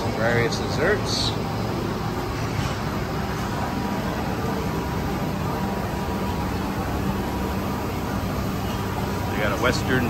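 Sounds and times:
fans and ventilation rumble: 0.0 - 10.0.

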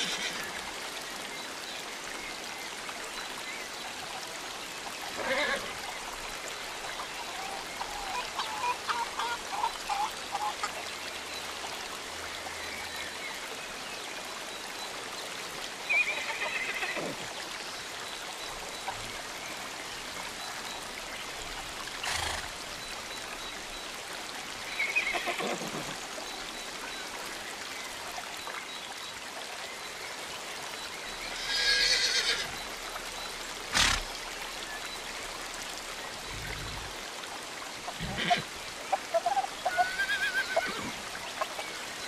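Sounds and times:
trickle of running water: 0.0 - 42.0.

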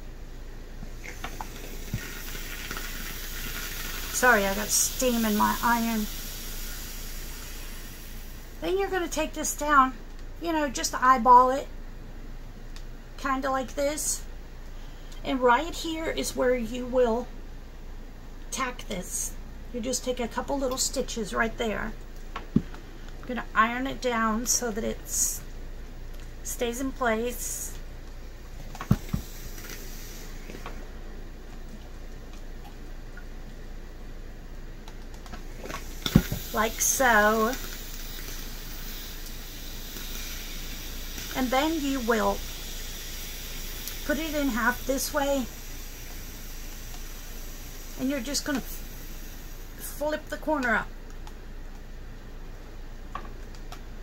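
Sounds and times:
steady low hum: 0.0 - 54.0
steam iron hissing: 1.0 - 8.6, 28.9 - 30.8, 35.5 - 50.0.

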